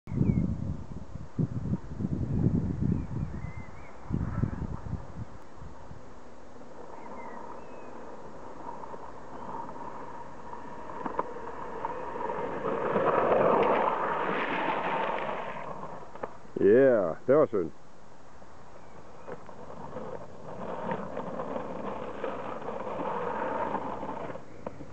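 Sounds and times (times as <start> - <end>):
skateboard wheels rolling on asphalt: 0.1 - 17.2, 17.9 - 24.9
skateboard scraping slide: 4.0 - 16.4, 18.7 - 24.9.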